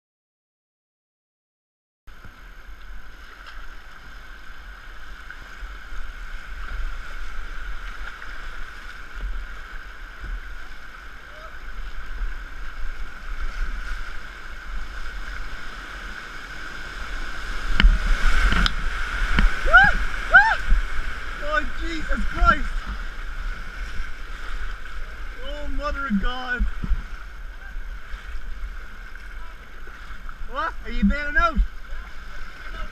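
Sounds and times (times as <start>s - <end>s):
wind rumble on microphone: 2.1s - 32.9s
rapids rushing: 2.2s - 32.9s
people whooping and yelling: 19.6s - 20.8s.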